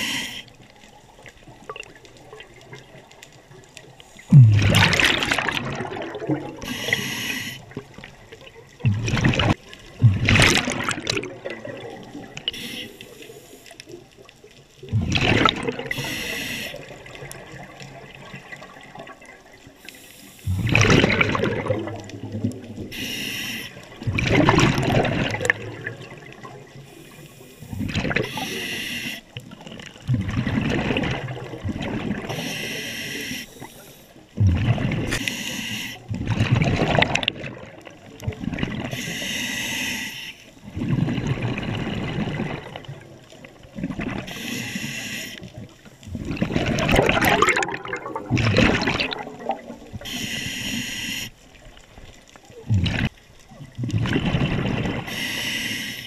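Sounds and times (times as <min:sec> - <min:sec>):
regulator hissing inhale: 0:00.0 - 0:00.6, 0:06.6 - 0:07.7, 0:12.5 - 0:13.8, 0:15.9 - 0:16.9, 0:19.8 - 0:20.6, 0:22.9 - 0:23.9, 0:26.9 - 0:27.7, 0:28.3 - 0:29.3, 0:32.3 - 0:34.2, 0:35.1 - 0:36.1, 0:38.9 - 0:40.6, 0:44.3 - 0:45.5, 0:50.0 - 0:51.4, 0:55.1 - 0:56.0
exhaled bubbles gushing: 0:01.1 - 0:13.2, 0:13.9 - 0:19.8, 0:20.4 - 0:23.0, 0:23.8 - 0:26.8, 0:27.7 - 0:28.6, 0:29.4 - 0:32.5, 0:34.4 - 0:35.2, 0:36.0 - 0:39.0, 0:40.6 - 0:44.4, 0:45.5 - 0:50.2, 0:51.6 - 0:55.2.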